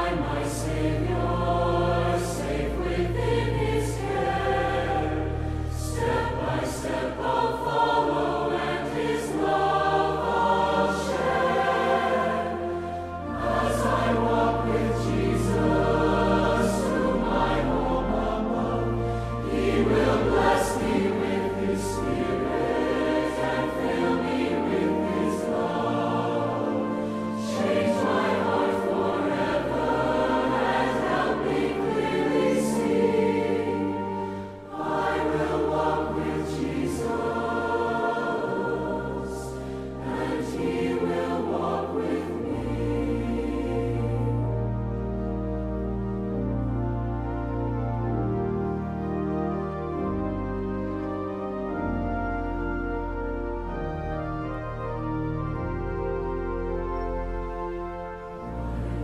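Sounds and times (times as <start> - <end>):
choir singing a hymn: 0.0 - 59.0
sustained low accompaniment notes: 0.0 - 59.0.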